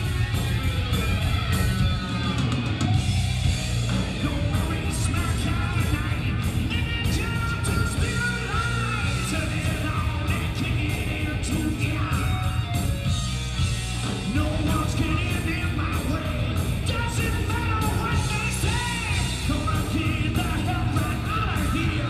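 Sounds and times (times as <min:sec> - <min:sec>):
live rock band playing: 0:00.0 - 0:22.0.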